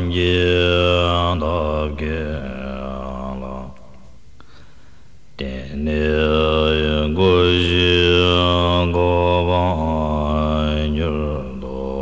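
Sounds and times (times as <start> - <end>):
deep voice chanting: 0.0 - 4.0, 5.4 - 12.0.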